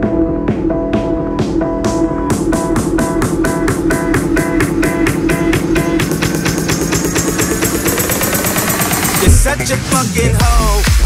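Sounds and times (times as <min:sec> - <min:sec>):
heavy deep bass: 0:00.0 - 0:11.0
rising synth tone: 0:05.6 - 0:09.6.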